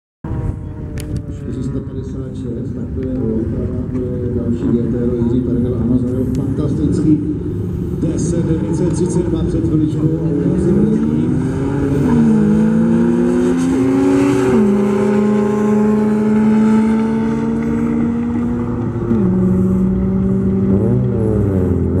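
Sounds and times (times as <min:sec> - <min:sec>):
cars accelerating hard: 0:00.3 - 0:22.0.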